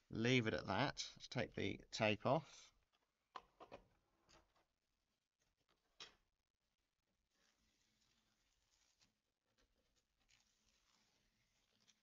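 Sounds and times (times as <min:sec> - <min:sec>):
masking tape being peeled: 0:07.3 - 0:12.0.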